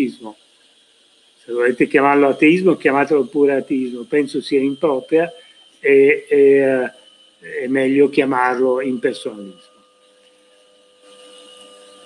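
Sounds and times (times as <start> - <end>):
faint electrical whine and hiss: 0.0 - 12.0.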